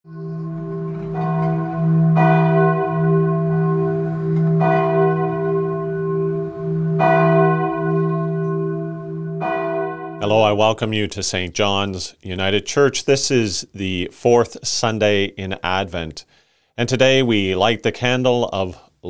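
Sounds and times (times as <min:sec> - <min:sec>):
church bell tolling: 0:00.1 - 0:10.7.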